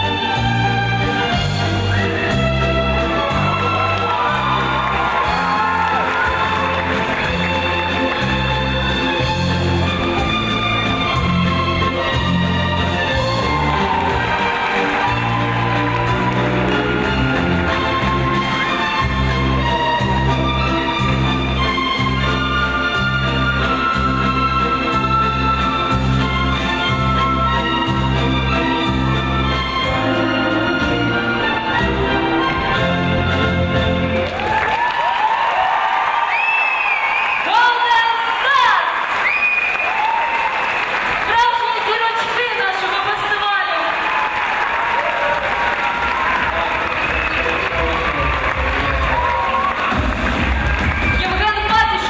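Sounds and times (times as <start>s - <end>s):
backing music: 0.0s - 38.1s, 39.5s - 52.0s
audience applause: 3.0s - 23.2s, 33.9s - 52.0s.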